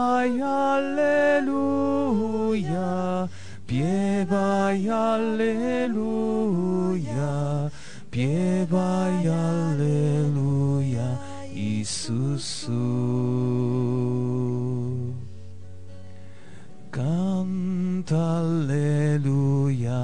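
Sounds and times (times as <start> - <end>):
person singing slow devotional song: 0.0 - 20.0.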